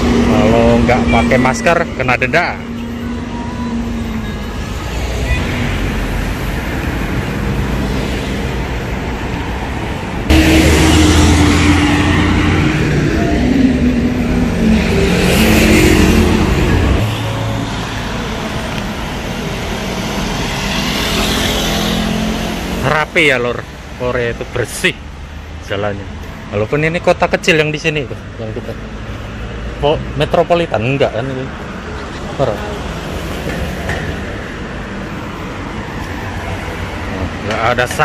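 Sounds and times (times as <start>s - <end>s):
cars passing on road: 0.0s - 38.0s
loud vehicle engine hum: 0.0s - 38.0s.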